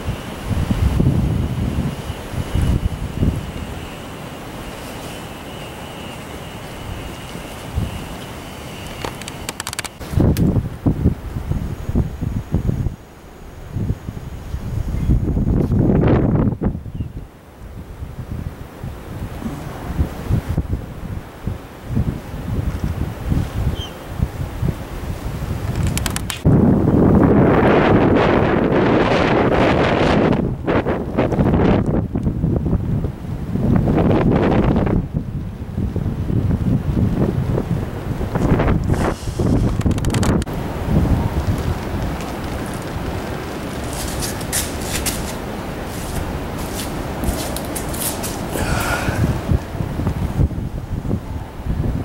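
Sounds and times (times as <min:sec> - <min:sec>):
wind buffeting microphone: 0:00.0 - 0:52.0.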